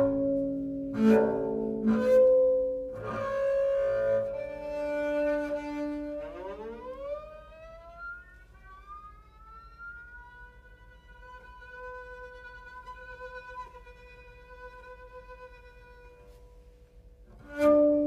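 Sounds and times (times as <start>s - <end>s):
bowed double bass: 0.0s - 18.0s.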